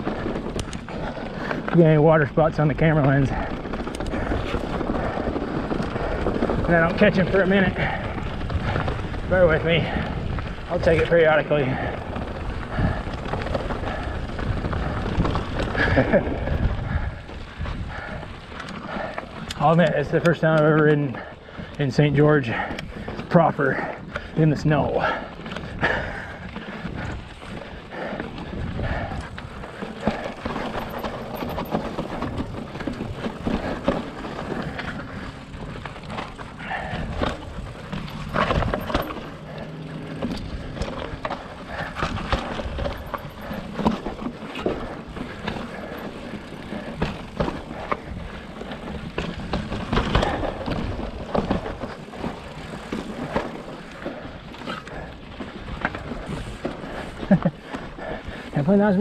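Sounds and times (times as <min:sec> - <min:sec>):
bike tyres scrubbing on rock: 0:00.0 - 0:20.5, 0:21.1 - 0:59.0
bike knocking and rattling: 0:00.0 - 0:59.0.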